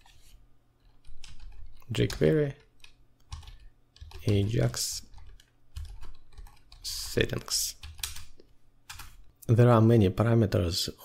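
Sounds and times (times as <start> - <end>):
keyboard keystrokes: 1.0 - 7.2.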